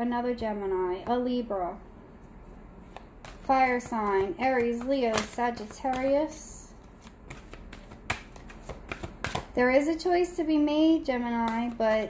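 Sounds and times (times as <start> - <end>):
cards being shuffled: 2.8 - 9.6, 11.3 - 12.0.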